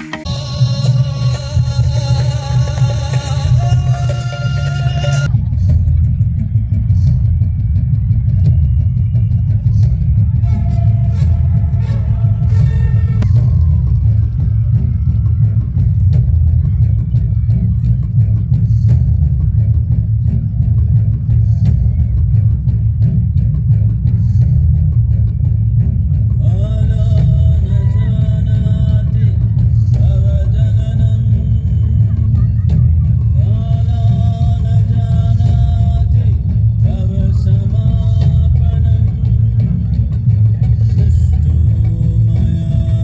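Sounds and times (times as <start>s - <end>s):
crowd talking: 0.0s - 43.0s
deep rumble: 0.2s - 43.0s.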